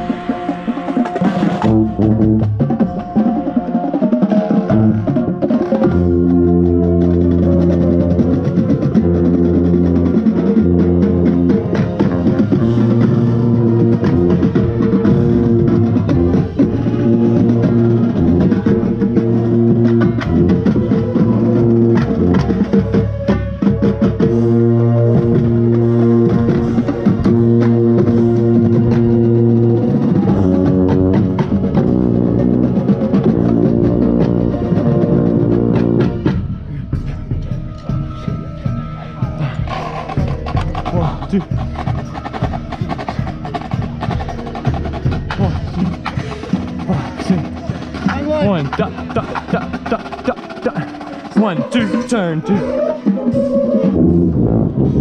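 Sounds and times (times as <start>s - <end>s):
contrabass bugle low notes: 0.0s - 37.3s, 46.8s - 55.0s
brass and drumline playing: 0.0s - 55.0s
percussion ticks and clicks: 37.0s - 54.0s.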